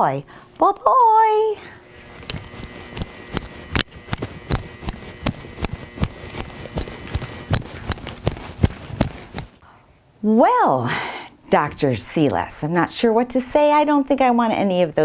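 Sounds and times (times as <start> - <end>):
boots footsteps on hard floor: 4.2 - 9.6.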